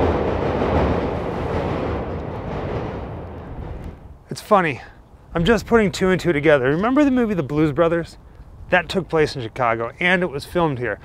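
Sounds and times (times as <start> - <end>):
train passing on elevated track: 0.0 - 10.0.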